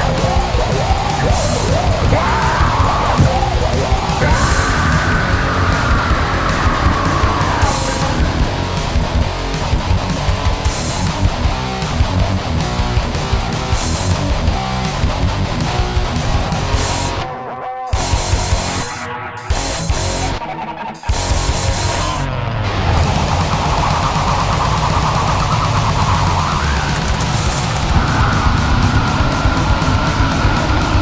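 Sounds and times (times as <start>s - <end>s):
fast pounding drums: 0.0s - 17.2s, 22.9s - 31.0s
distorted electric guitars: 0.0s - 31.0s.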